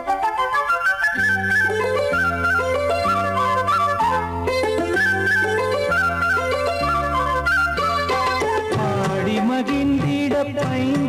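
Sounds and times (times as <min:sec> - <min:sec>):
flute melody: 0:00.0 - 0:09.6
bass and accompaniment: 0:00.0 - 0:11.0.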